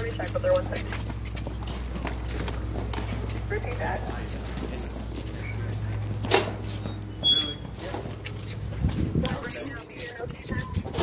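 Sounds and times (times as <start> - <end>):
footsteps on concrete: 0.0 - 11.0
steady low hum: 0.0 - 11.0.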